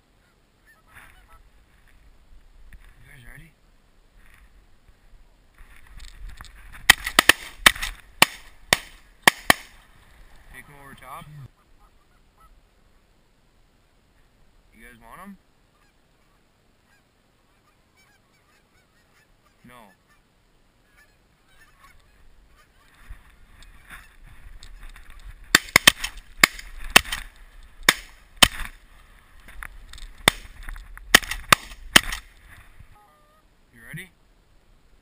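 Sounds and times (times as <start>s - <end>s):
geese honking: 0.2s - 1.5s, 10.5s - 12.6s, 15.7s - 24.9s, 32.9s - 33.5s
shotgun shots: 6.9s - 9.8s, 25.5s - 27.3s, 27.9s - 28.8s, 30.2s - 30.5s, 31.1s - 32.3s.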